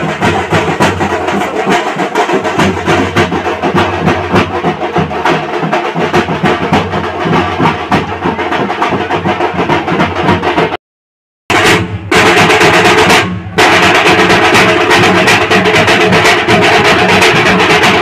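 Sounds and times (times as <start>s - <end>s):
fast dense drumming: 0.0s - 10.8s, 11.5s - 18.0s.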